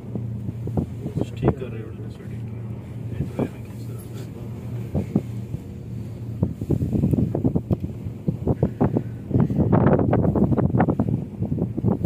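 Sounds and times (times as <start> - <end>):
steady low hum: 0.0 - 12.0
wind buffeting microphone: 0.0 - 12.0.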